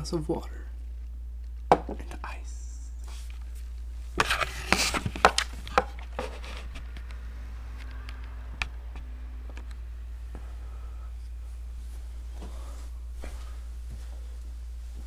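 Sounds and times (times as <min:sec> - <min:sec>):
steady low hum: 0:00.0 - 0:15.0
objects knocking on wooden table: 0:01.7 - 0:02.1.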